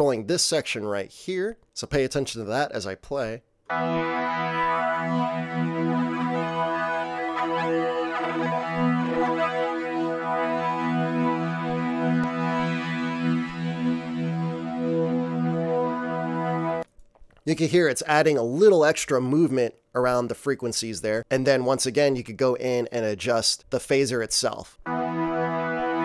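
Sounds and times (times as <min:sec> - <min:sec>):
synthesizer pad chord with phaser: 0:03.7 - 0:16.8, 0:24.9 - 0:26.0.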